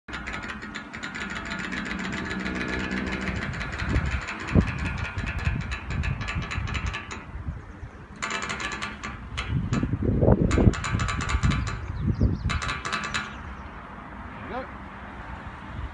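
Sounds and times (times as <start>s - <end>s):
squeaky pulley clicking: 0.0s - 13.7s
wind gusts on microphone: 2.6s - 15.9s.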